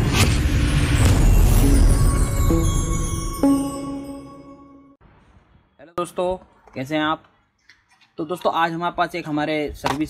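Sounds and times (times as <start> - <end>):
held musical note: 1.5 - 5.0.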